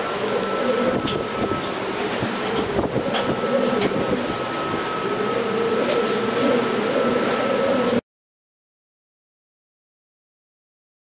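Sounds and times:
ship engine rumble: 0.0 - 8.0
strong wind buffeting microphone: 0.8 - 5.0.

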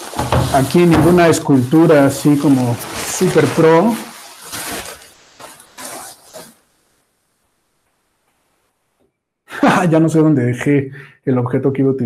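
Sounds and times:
plastic bags rustling: 0.0 - 7.1.

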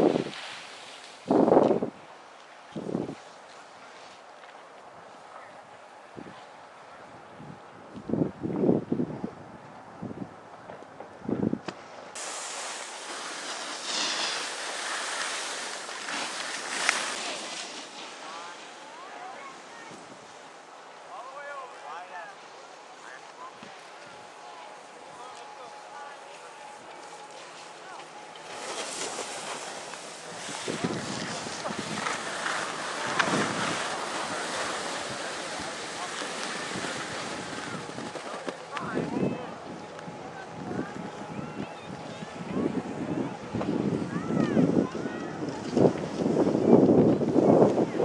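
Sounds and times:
snow scraping under feet: 0.0 - 1.8, 12.2 - 20.5, 25.2 - 39.0
wind buffeting microphone: 7.0 - 17.7, 29.0 - 48.0.

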